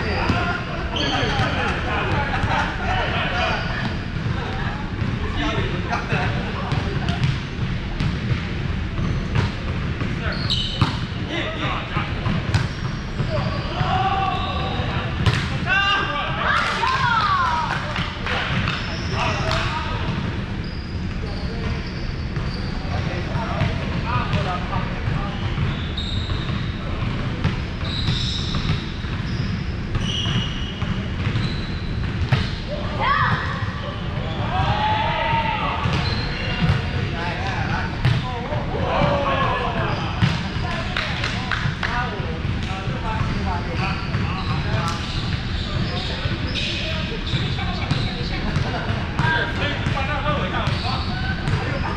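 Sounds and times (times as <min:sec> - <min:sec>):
sneakers squeaking: 0:00.0 - 0:51.9
volleyball struck and bouncing: 0:15.2 - 0:15.6.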